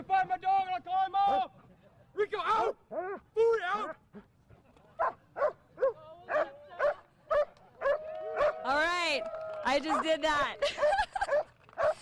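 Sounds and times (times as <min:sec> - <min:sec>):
dog barking: 0:05.0 - 0:08.6, 0:11.3 - 0:12.0.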